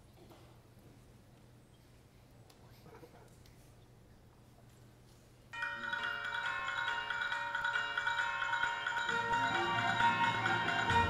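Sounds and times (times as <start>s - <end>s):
wind ensemble playing chords: 9.1s - 11.0s.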